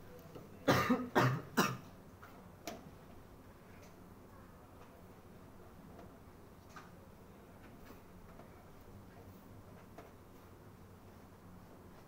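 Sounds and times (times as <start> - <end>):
person coughing: 0.6 - 1.9.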